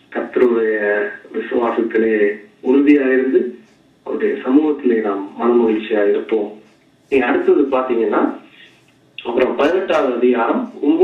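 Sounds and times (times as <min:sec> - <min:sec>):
man preaching: 0:00.0 - 0:08.5, 0:09.2 - 0:11.0.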